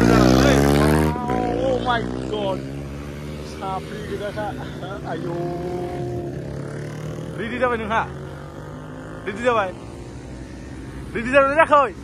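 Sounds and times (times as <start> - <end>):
motorcycle passing: 0.0 - 12.0.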